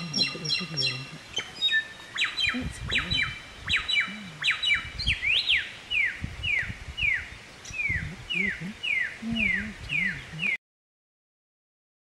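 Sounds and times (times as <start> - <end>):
bird singing clear whistles: 1.4 - 8.1.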